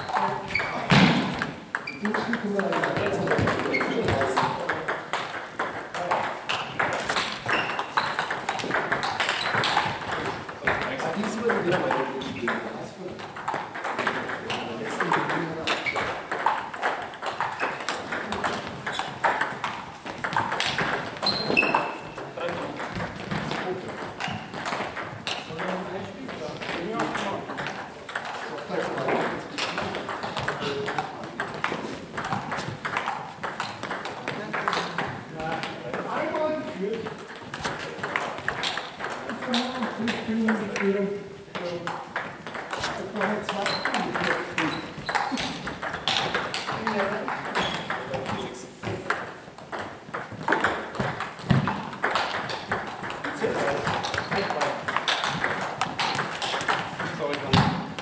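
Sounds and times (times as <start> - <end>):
table tennis balls clicking: 0.0 - 58.0.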